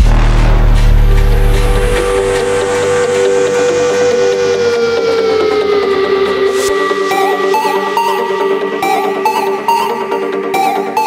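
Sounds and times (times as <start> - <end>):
electronic trap music: 0.0 - 11.0
siren-like synth tone: 0.0 - 11.0.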